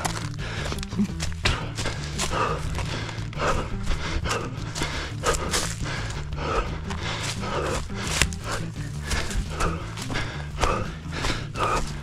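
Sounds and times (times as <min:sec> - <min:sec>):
running footsteps on forest ground: 0:00.0 - 0:12.0.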